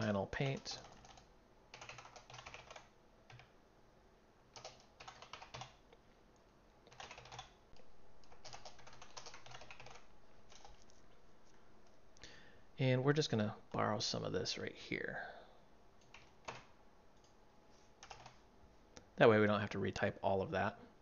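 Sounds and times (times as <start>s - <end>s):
keyboard typing: 0.0s - 3.5s, 4.5s - 5.8s, 6.9s - 11.2s, 16.0s - 17.4s, 18.0s - 18.4s.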